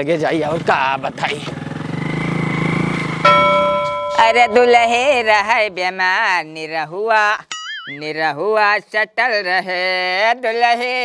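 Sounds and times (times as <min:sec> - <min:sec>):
motorcycle engine running: 0:00.5 - 0:06.2
bell-like chime ringing: 0:03.3 - 0:05.8.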